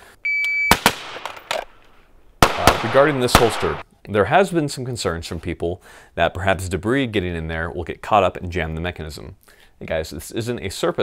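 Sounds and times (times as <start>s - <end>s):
electronic shot timer beep: 0.3s - 0.8s
pistol shots: 0.7s - 1.5s, 2.4s - 3.8s.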